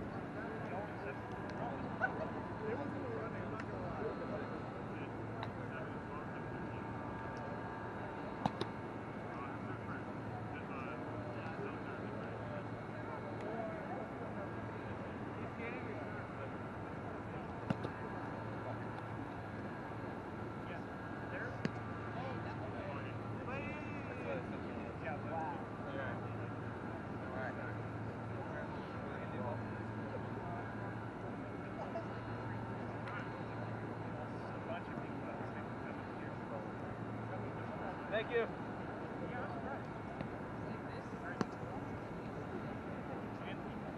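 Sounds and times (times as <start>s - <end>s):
faint indistinct voices: 0.0s - 43.9s
outdoor background noise: 0.0s - 43.9s.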